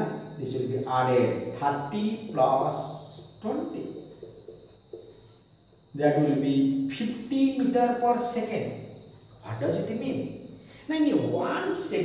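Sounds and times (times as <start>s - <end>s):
steady high-pitched whine: 0.0s - 12.0s.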